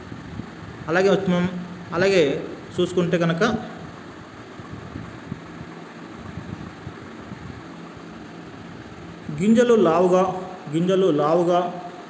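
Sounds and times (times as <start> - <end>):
low background hum and hiss: 0.0 - 12.0.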